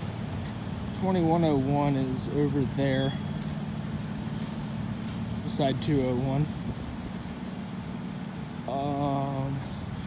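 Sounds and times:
outdoor background noise: 0:00.0 - 0:10.0
vehicle engines droning: 0:00.0 - 0:10.0.

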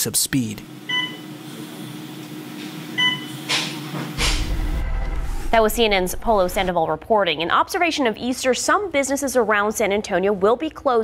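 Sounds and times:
low rumble: 0:04.2 - 0:07.0
steady low hum: 0:04.2 - 0:07.2.

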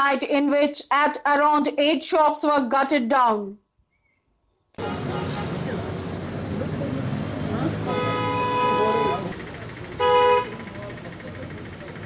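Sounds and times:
street noise: 0:00.0 - 0:03.5, 0:04.2 - 0:12.0
people talking: 0:00.0 - 0:03.6, 0:04.8 - 0:08.0, 0:08.6 - 0:12.0
vehicle horn honking: 0:04.8 - 0:05.4, 0:07.8 - 0:10.7.

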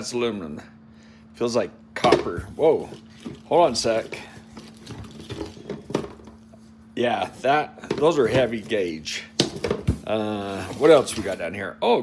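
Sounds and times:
plastic wrapping rustling: 0:02.6 - 0:06.5, 0:07.2 - 0:11.4.

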